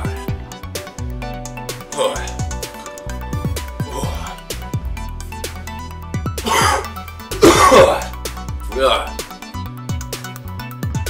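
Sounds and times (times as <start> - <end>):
electronic beat music: 0.0 - 11.0
man coughing and clearing throat: 6.4 - 8.2.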